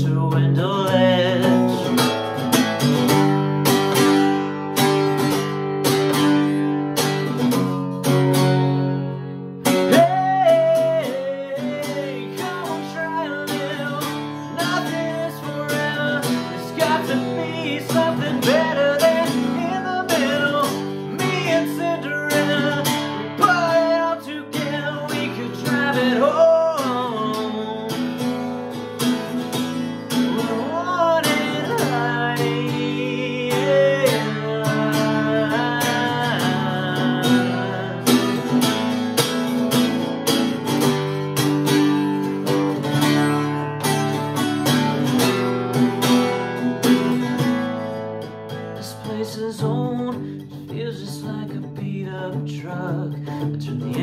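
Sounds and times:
man singing: 0:00.0 - 0:03.3, 0:09.6 - 0:41.1, 0:48.5 - 0:54.0
strummed acoustic guitar: 0:00.0 - 0:54.0.

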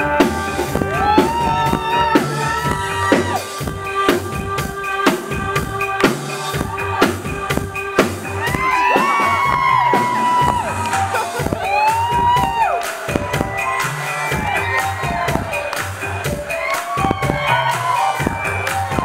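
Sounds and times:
audience whooping and cheering: 0:00.0 - 0:03.7, 0:06.3 - 0:07.6, 0:08.2 - 0:19.0
synth-pop band playing live: 0:00.0 - 0:19.0.

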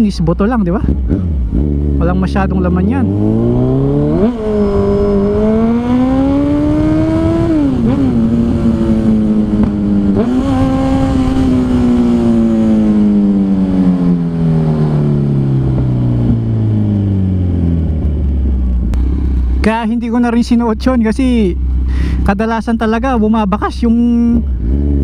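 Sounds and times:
motorcycle engine running: 0:00.0 - 0:25.0.

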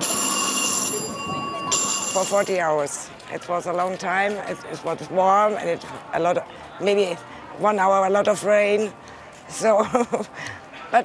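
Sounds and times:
bright metallic bell ringing: 0:00.0 - 0:02.7.

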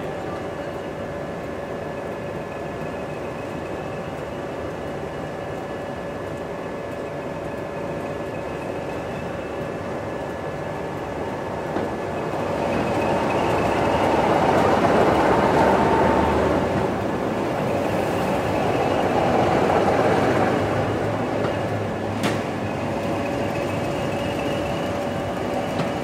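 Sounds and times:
diesel locomotive engines: 0:00.0 - 0:26.0
train wheels on track: 0:00.0 - 0:26.0.

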